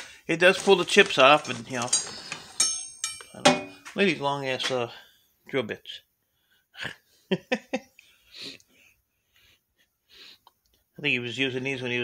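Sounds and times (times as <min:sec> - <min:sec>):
metallic clinks of drill bits: 0:00.9 - 0:04.0.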